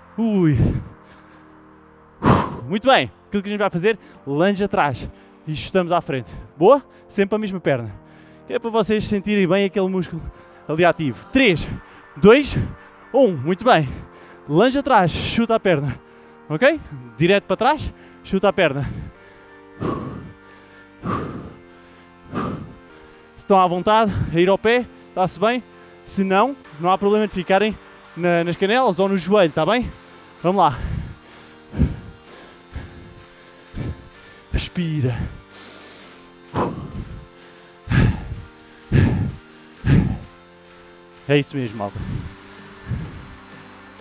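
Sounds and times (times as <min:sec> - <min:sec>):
background music: 0:00.0 - 0:44.0
man breathing out forcefully: 0:00.6 - 0:02.7, 0:18.8 - 0:23.4, 0:30.7 - 0:34.5, 0:35.1 - 0:41.2, 0:41.9 - 0:43.8
man exhaling forcefully: 0:02.2 - 0:02.7, 0:19.8 - 0:20.4, 0:21.0 - 0:21.6, 0:22.3 - 0:22.8, 0:36.5 - 0:37.2, 0:37.9 - 0:40.2.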